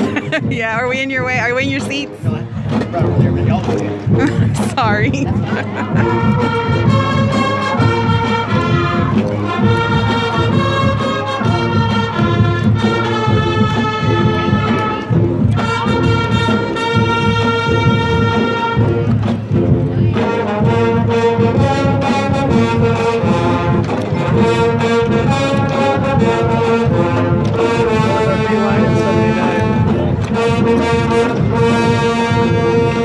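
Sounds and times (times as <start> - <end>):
people talking: 0.0 - 6.2, 27.9 - 31.5
brass notes: 0.0 - 33.0
drum beat: 0.0 - 33.0
marching band playing: 0.0 - 33.0.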